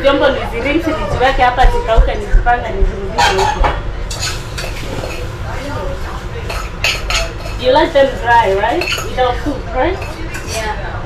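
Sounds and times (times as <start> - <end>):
dishes and cutlery clinking: 3.2 - 5.4, 6.1 - 10.8.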